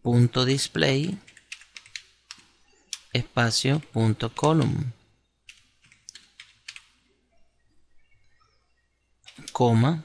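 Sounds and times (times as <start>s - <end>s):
computer keyboard typing: 1.2s - 3.1s, 5.5s - 7.1s, 9.3s - 9.6s.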